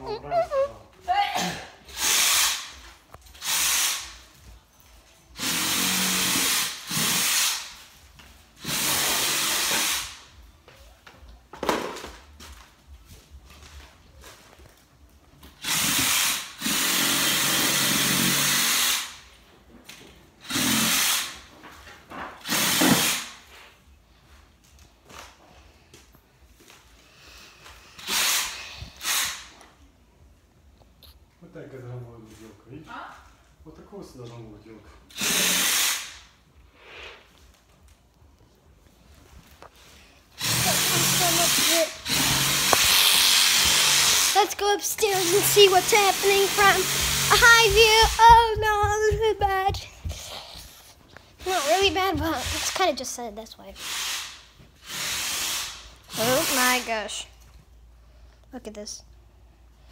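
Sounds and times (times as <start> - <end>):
cordless drill running: 1.9 - 4.1, 5.4 - 7.7, 8.6 - 10.1, 15.6 - 19.2, 20.4 - 21.4, 22.4 - 23.2, 28.0 - 29.4, 35.1 - 36.2, 40.4 - 44.4, 45.1 - 49.0, 53.8 - 56.9.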